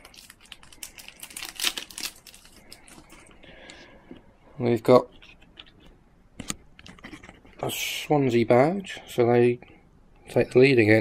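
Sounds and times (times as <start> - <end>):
foil wrapper crinkling and tearing: 0.0 - 3.3.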